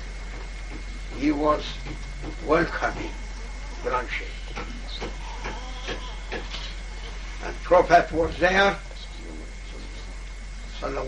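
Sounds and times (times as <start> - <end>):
recording hiss: 0.0 - 5.3, 5.9 - 11.0
low hum: 0.0 - 11.0.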